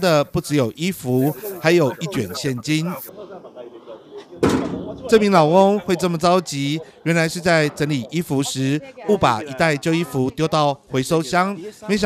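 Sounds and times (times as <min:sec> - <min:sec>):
street background: 0:00.0 - 0:12.0
bang on metal bin: 0:04.4 - 0:05.0.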